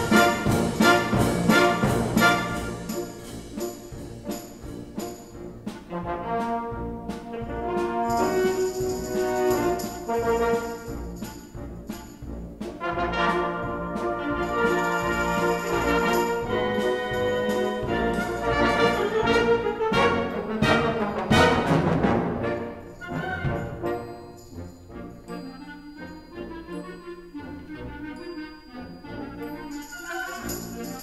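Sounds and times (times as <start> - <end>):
wind band playing: 0.0 - 31.0.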